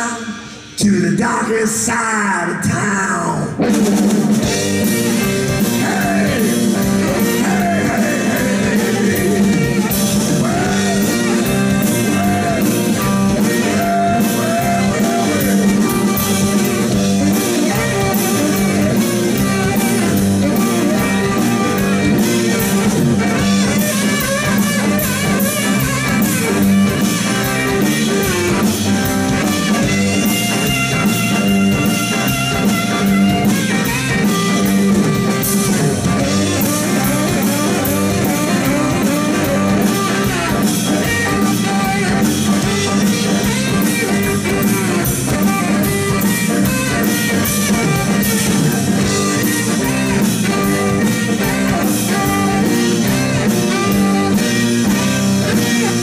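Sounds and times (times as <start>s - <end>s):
electric bass: 0.0s - 56.0s
electric guitar: 0.0s - 56.0s
drum kit: 2.6s - 56.0s
saxophone: 4.4s - 56.0s.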